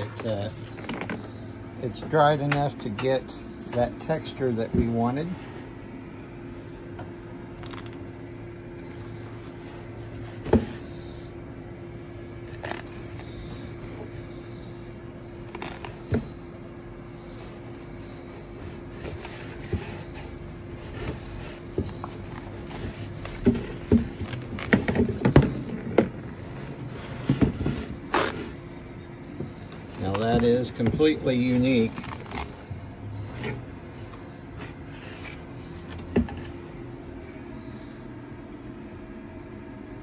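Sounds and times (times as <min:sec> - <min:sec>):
steady hum: 0:00.0 - 0:40.0
fabric rustling and scraping: 0:26.5 - 0:28.8.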